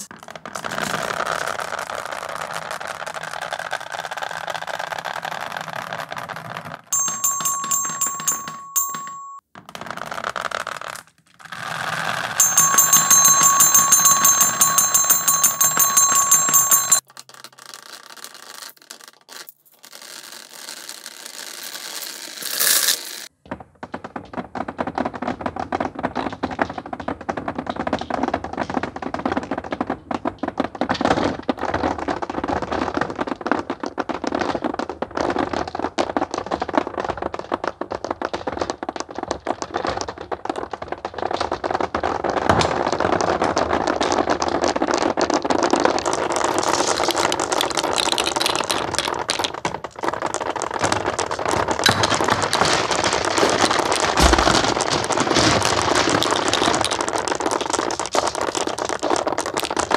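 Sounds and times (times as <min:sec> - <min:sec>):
alarm-like ringing tone: 0:07.0 - 0:09.4, 0:12.4 - 0:17.0
steel marbles clattering and rolling: 0:07.0 - 0:09.4, 0:11.7 - 0:23.3, 0:45.8 - 0:59.9.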